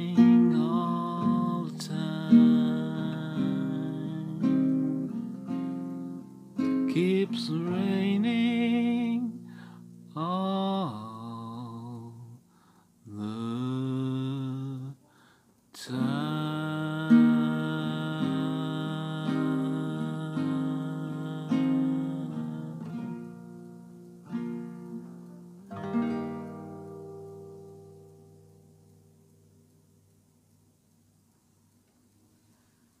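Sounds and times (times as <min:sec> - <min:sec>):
acoustic guitar picked notes: 0:00.0 - 0:30.5.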